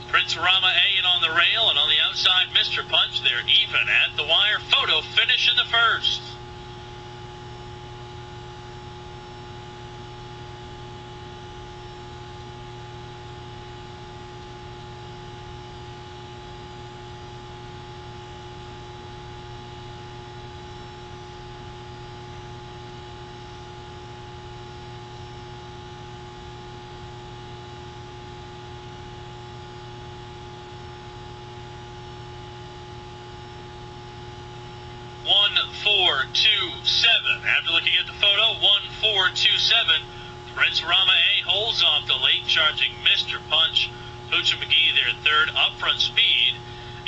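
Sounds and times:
electrical hum: 0:00.0 - 0:47.0.

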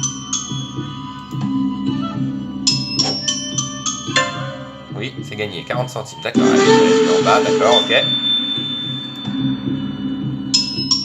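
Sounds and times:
high steady tone: 0:06.0 - 0:11.0
repeating bass notes: 0:06.4 - 0:09.4.

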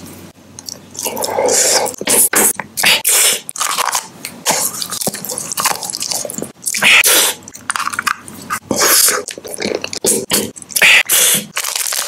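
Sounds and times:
crunchy snack chewing: 0:08.8 - 0:12.0.

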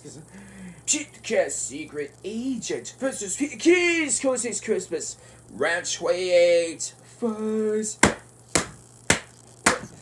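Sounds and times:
books slapping together: 0:08.0 - 0:10.0.

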